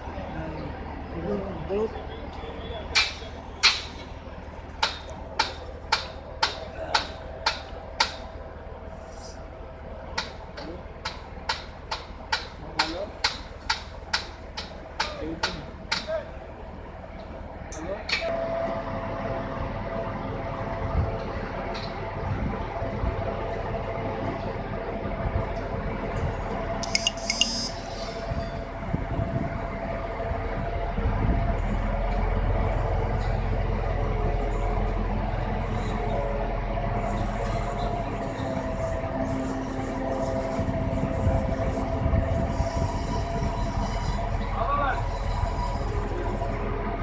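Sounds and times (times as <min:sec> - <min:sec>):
crane engine running under load: 0:00.0 - 0:47.0.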